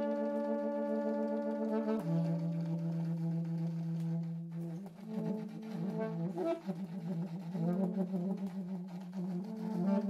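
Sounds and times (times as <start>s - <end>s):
saxophones playing long tones: 0.0s - 10.0s.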